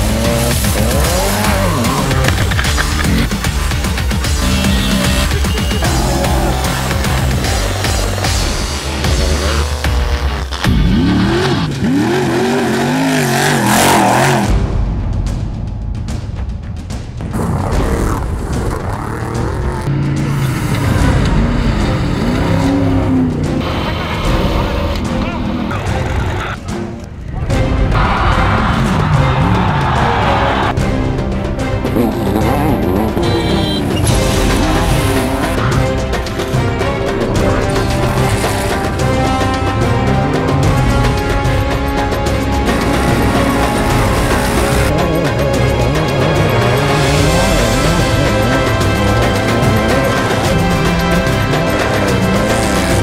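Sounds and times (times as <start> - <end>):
truck engine revving: 0.0 - 14.9, 17.2 - 53.0
music with deep bass: 0.0 - 53.0
rush of noise: 27.2 - 30.8.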